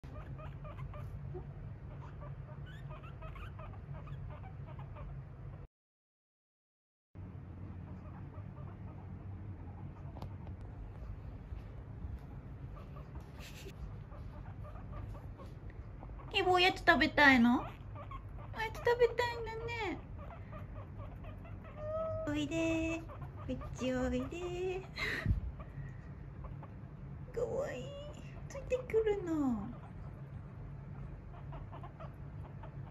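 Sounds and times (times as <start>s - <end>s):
guinea pigs squeaking: 0.0s - 5.7s, 7.6s - 32.9s
steady low hum: 0.0s - 5.7s, 7.2s - 32.9s.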